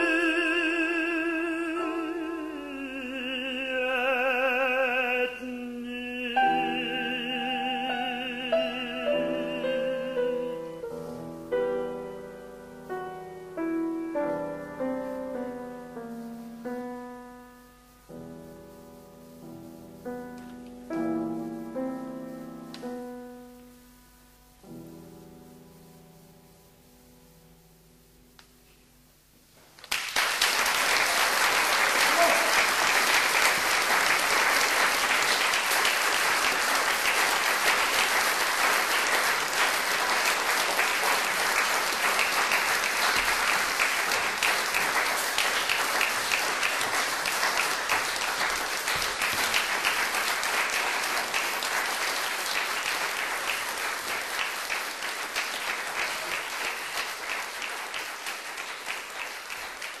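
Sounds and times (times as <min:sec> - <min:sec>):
audience applause: 0:29.8 - 1:00.0.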